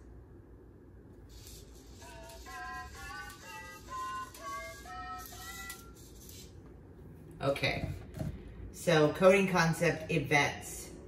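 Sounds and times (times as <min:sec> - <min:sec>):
robot singing synthesized notes: 0:02.0 - 0:05.8.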